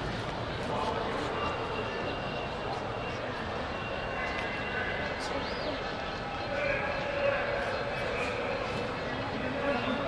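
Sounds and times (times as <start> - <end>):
urban background din: 0.0 - 10.0.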